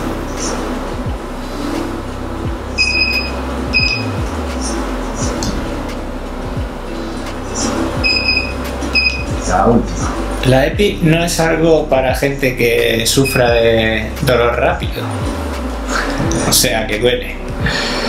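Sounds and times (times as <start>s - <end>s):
short high electronic beeps: 2.8s - 4.2s, 8.0s - 9.4s.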